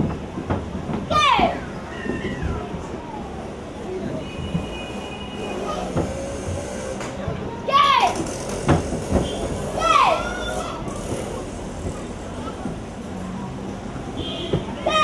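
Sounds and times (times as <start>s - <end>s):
children shouting karate cries: 1.1s - 2.9s, 7.6s - 8.3s, 9.7s - 10.9s, 14.8s - 15.0s
children chattering: 1.1s - 15.0s.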